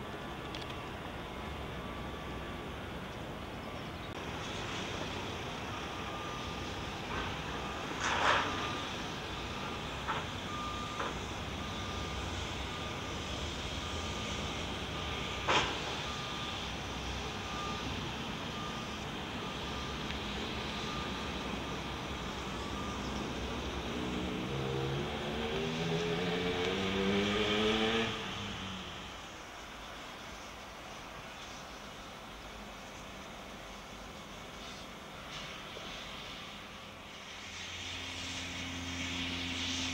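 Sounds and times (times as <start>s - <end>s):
heavy construction machinery running: 0.0s - 39.9s
diesel engine revving: 4.1s - 29.2s
back-up alarm beeping: 5.7s - 13.2s, 13.8s - 23.9s.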